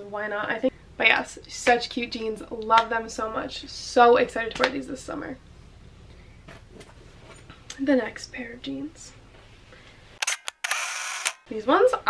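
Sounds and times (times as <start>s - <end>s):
camera shutter clicks: 10.2s - 11.4s.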